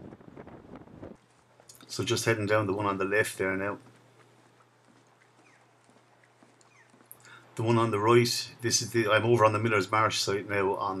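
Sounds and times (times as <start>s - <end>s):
crackling outdoor background noise: 0.0s - 11.0s
faint low hum: 0.7s - 11.0s
man speaking: 1.9s - 3.8s, 7.6s - 11.0s.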